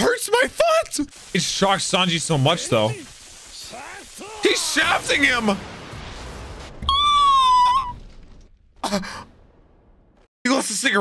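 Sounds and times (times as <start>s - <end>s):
person sighing: 8.8s - 9.3s.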